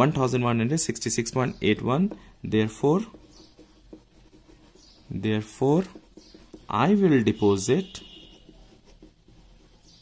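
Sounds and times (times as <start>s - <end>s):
pen scratching on paper: 1.0s - 10.0s.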